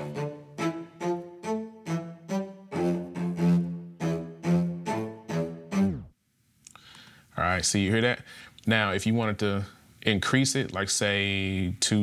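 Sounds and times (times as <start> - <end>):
staccato string loop: 0.0 - 6.1
tape-stop pitch drop: 3.3 - 6.1.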